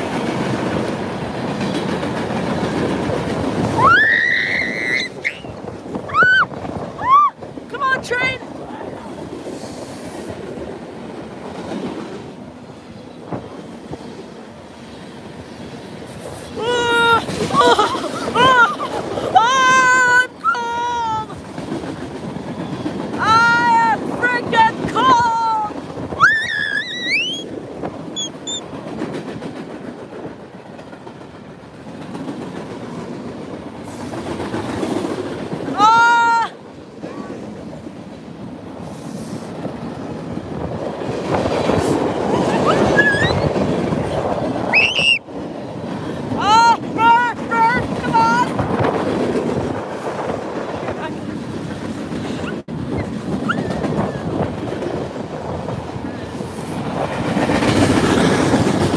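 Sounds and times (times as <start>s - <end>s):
freight train rumble and clatter: 0.0s - 58.9s
high voice shouting: 19.4s - 21.3s, 35.8s - 36.5s
high squeals: 26.2s - 27.5s, 28.2s - 28.6s.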